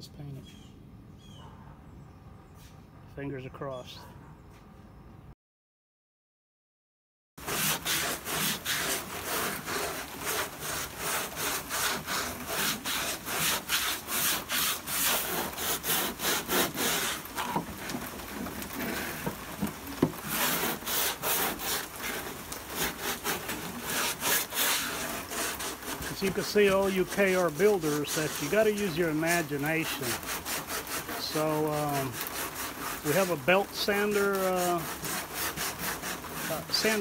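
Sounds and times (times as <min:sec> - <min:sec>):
sanding block scrubbing: 0:07.4 - 0:37.0.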